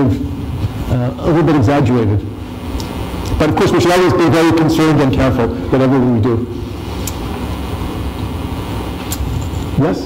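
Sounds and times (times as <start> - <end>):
man speaking: 3.4 - 6.5.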